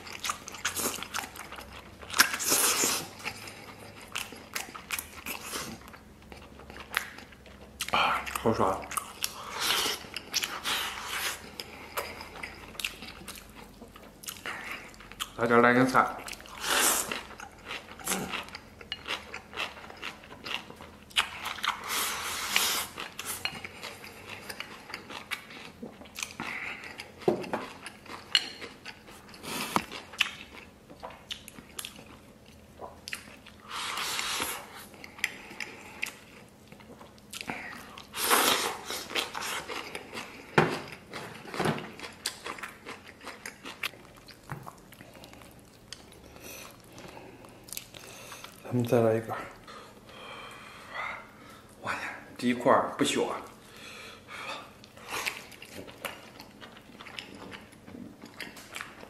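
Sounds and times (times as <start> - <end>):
man chewing food: 0.0 - 52.4, 53.4 - 59.0.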